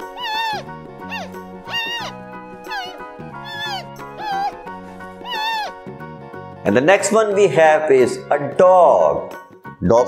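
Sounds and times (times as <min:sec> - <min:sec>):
background music with low notes: 0:00.0 - 0:10.0
giant panda bleating: 0:00.2 - 0:05.8.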